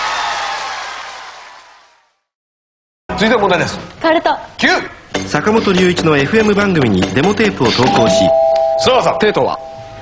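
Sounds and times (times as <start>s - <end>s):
two-note doorbell chime: 7.9s - 10.0s.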